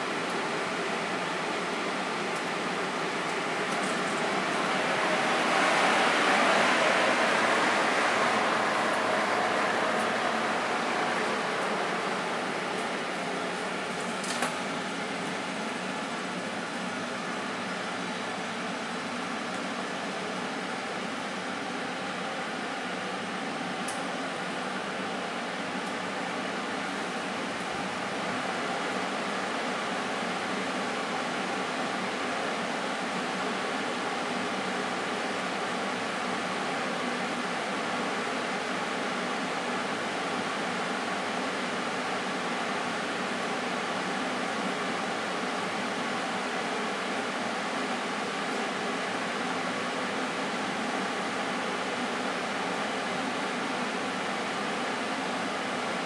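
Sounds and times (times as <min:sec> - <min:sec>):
gas oven fan and burner rushing: 0:02.4 - 0:15.9.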